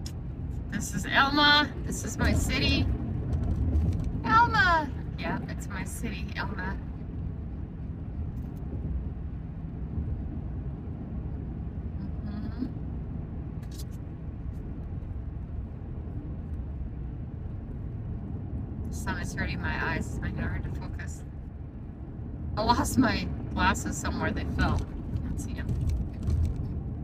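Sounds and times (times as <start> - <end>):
car road and engine noise: 0.0 - 27.0.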